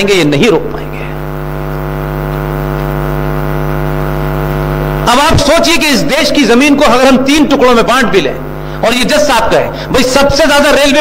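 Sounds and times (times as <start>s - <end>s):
mains hum: 0.0s - 11.0s.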